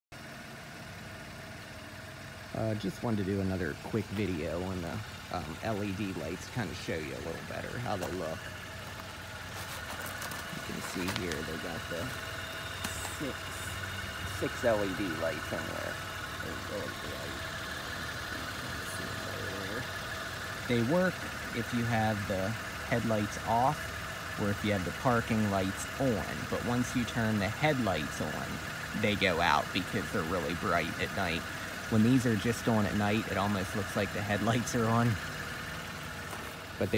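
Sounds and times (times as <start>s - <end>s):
car engine idling: 0.1s - 36.9s.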